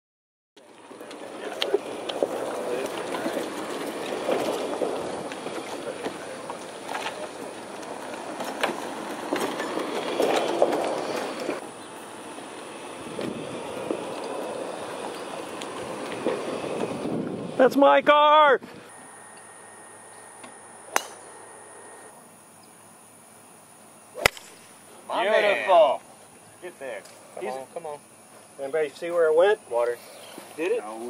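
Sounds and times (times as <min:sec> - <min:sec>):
golf cart rolling on concrete: 0:00.6 - 0:18.2
insects droning: 0:00.6 - 0:31.0
golf club striking ball: 0:20.4 - 0:21.9, 0:24.2 - 0:24.7.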